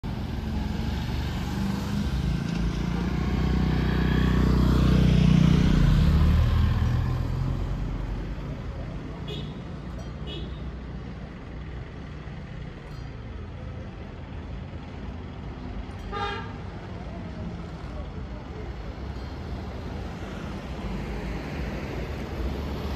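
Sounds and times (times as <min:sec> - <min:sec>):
street traffic noise: 0:00.0 - 0:22.9.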